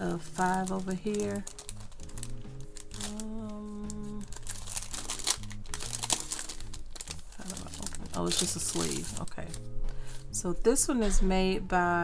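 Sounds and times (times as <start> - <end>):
plastic sleeve crinkling: 0.0 - 9.7
background music: 0.0 - 12.0.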